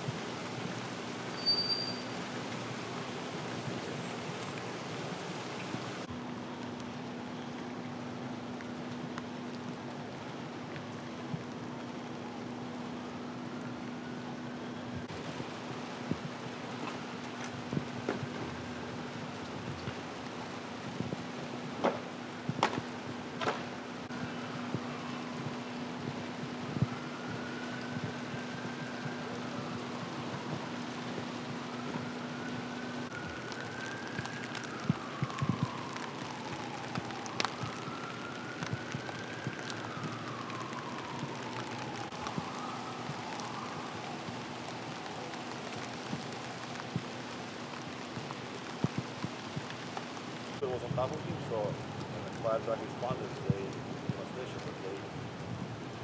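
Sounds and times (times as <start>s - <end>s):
distant siren wailing: 0.0s - 56.0s
steady rain on wet street: 0.0s - 56.0s.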